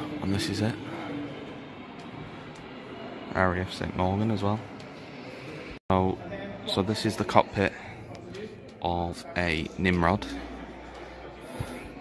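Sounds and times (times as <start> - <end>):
man speaking: 0.0 - 0.9, 3.3 - 4.7, 5.9 - 10.5.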